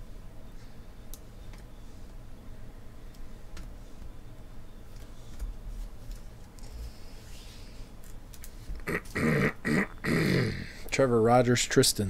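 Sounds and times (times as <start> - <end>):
short low vocal sounds: 8.8 - 10.8.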